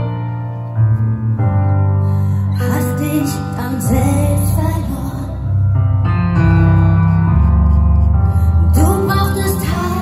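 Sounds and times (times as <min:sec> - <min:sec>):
piano playing sustained chords: 0:00.0 - 0:10.0.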